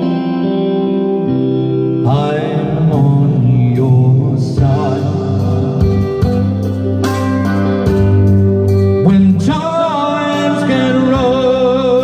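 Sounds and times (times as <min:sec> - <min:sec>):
karaoke backing track chords: 0:00.0 - 0:12.0.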